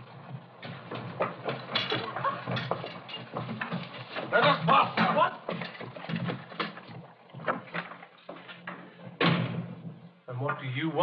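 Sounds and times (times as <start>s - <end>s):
scuffling feet and knocks: 0.0s - 10.2s.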